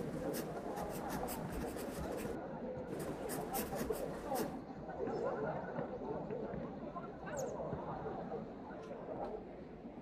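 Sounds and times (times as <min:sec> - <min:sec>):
pen scratching on paper: 0:00.0 - 0:04.5.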